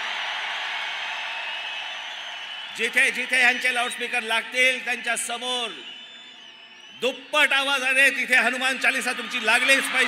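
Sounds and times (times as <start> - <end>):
crowd cheering and applauding: 0.0 - 7.0, 8.2 - 10.0.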